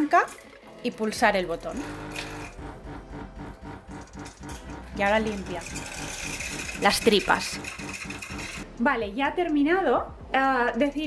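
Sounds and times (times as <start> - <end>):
espresso machine pump pulsing hum: 1.7 - 8.6.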